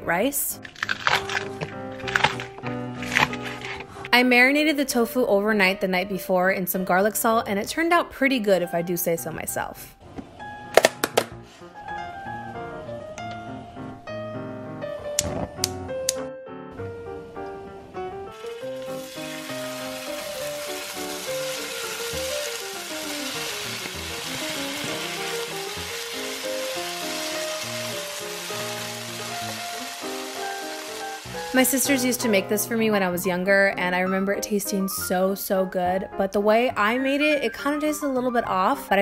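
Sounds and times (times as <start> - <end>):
background music: 0.0 - 39.0
tofu sizzling in frying pan: 18.4 - 32.1.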